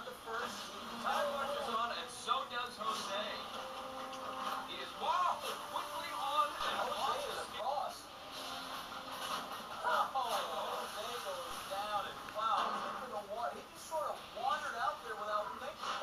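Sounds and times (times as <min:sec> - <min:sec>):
television voices: 0:00.0 - 0:16.0.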